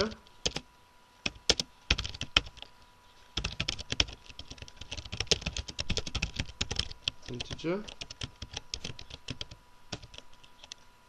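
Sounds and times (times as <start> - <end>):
typing on computer keyboard: 0.0 - 0.6, 1.3 - 2.7, 3.4 - 10.8.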